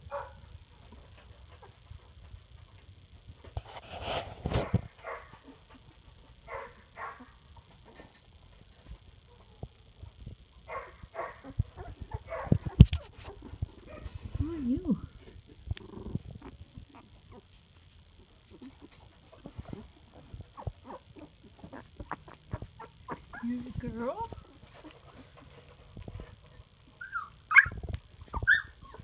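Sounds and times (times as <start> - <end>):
low wavering whine: 0.0 - 29.0
puppies whimpering and squeaking: 11.3 - 13.9, 18.5 - 25.8, 26.9 - 29.0.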